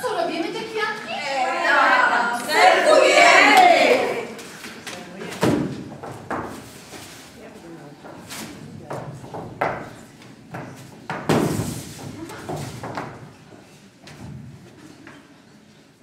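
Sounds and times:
low voices in echoing hall: 0.0 - 16.0.

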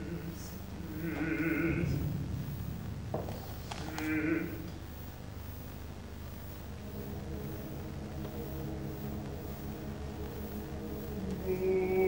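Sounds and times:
nasal wavering held note: 6.8 - 12.0.

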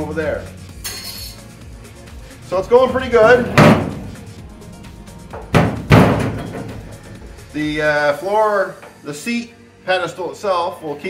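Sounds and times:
metallic knocks on car floor: 5.4 - 6.9.

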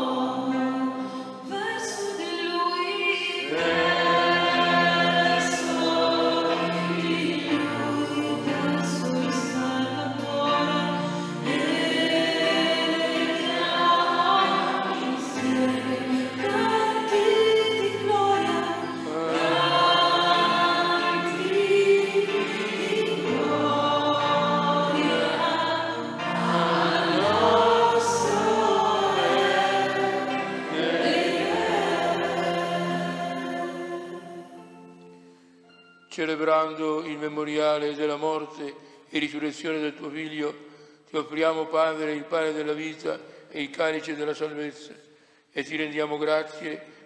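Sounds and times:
choir singing a chant: 3.2 - 34.6.

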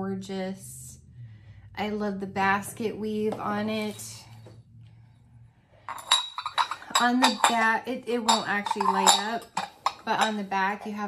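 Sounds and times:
ceramic clinking on ceramic: 5.9 - 10.5.

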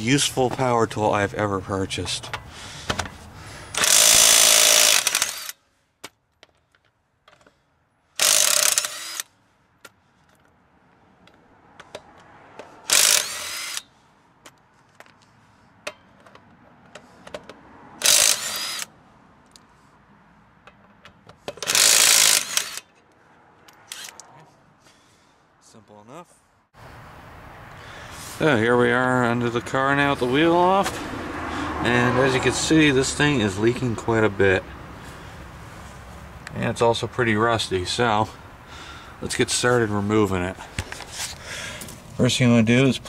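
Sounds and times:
impact gun spinning lug nuts: 2.8 - 5.6, 8.2 - 9.3, 11.8 - 13.9, 16.9 - 18.9, 20.7 - 23.0.

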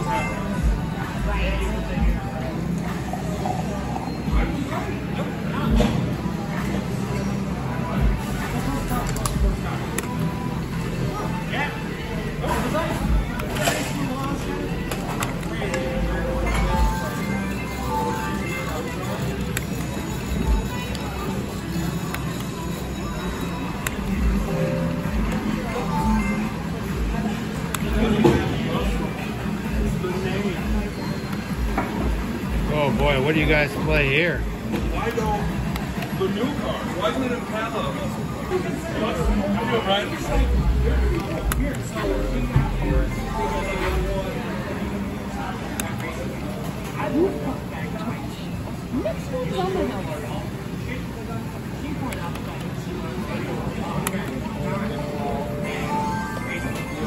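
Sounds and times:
people chattering: 0.0 - 57.0
people talking: 0.0 - 57.0
background music: 6.8 - 30.0, 39.2 - 45.7
background music beat: 40.3 - 44.4.

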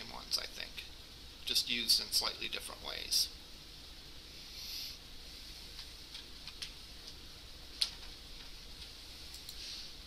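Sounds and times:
computer mouse clicks: 9.3 - 9.6.

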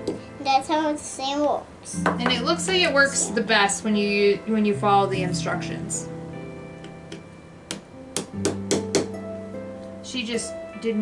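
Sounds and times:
plucked guitar music: 1.9 - 11.0
plastic hammer tapping pick: 6.8 - 9.2.

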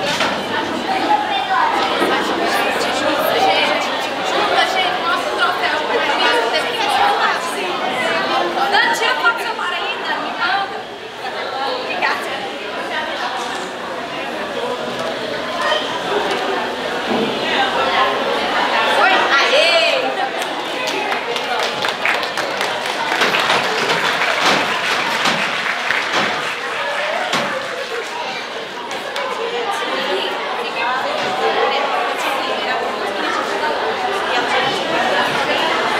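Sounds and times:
crowd chattering: 0.0 - 35.9.

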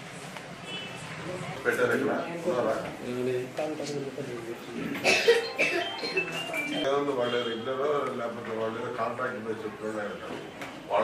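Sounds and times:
voices talking: 3.0 - 7.7
person coughing: 5.0 - 5.9.

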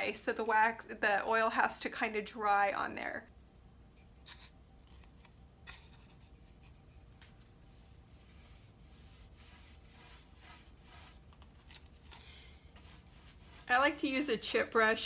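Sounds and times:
brush swishing on wood: 7.5 - 11.3, 12.7 - 15.0.

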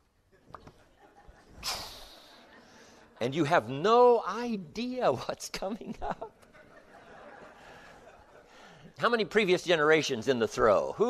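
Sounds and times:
man drawing a quick breath: 1.6 - 3.0.

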